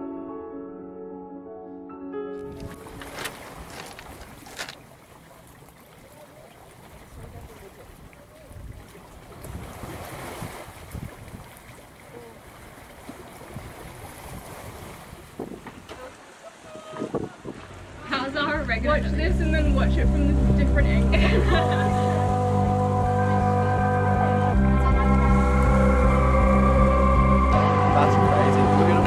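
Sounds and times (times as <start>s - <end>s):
wind buffeting microphone: 7.0s - 12.0s, 12.9s - 21.6s.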